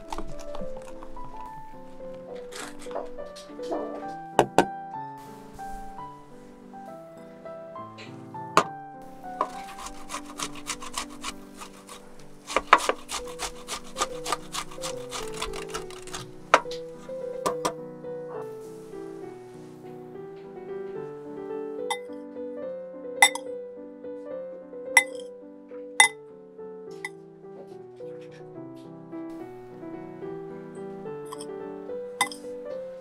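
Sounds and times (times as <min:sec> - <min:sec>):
soft piano music: 0:00.0 - 0:33.0
ham rasping on grater: 0:09.1 - 0:17.1.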